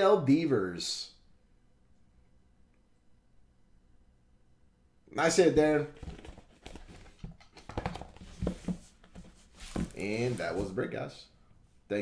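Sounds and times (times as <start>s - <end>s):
cards and cardboard box handled: 5.9s - 10.8s.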